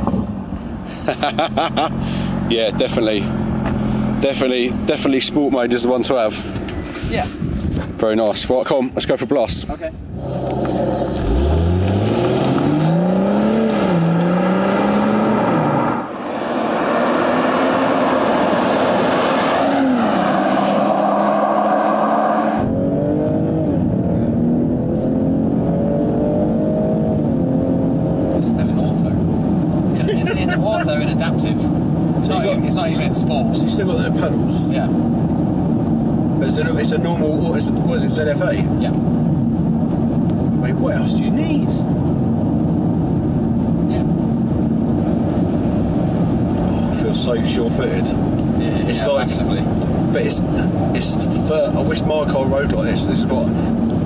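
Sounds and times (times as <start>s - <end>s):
car engine accelerating hard: 10.2s - 38.0s.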